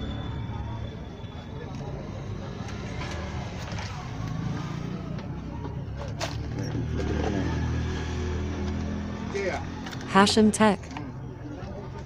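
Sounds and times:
background traffic rumble: 0.0s - 12.0s.

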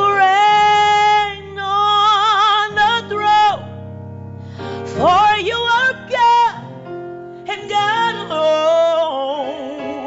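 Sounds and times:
woman singing gospel: 0.0s - 3.7s, 4.7s - 6.8s, 7.4s - 10.0s
keyboard backing: 0.0s - 10.0s.

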